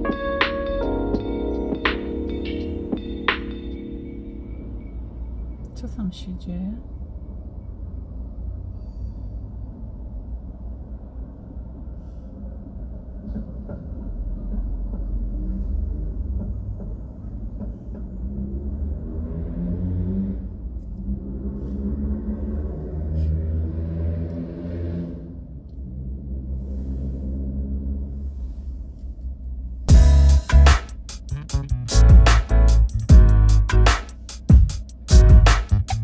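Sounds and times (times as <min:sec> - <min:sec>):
city traffic rumble: 0:00.0 - 0:36.0
heavy vehicle passing: 0:04.4 - 0:29.0.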